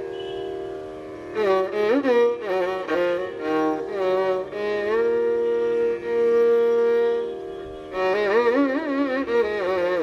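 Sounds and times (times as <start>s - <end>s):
steady drone: 0.0s - 10.0s
violin playing slow melody: 0.0s - 10.0s.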